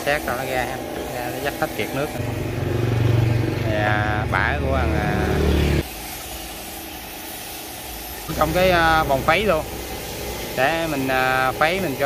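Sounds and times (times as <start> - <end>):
screw press motor humming: 4.4 - 12.0.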